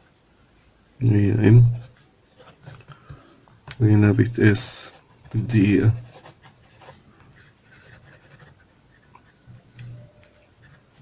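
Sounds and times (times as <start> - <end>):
pen scratching on paper: 4.6 - 11.0.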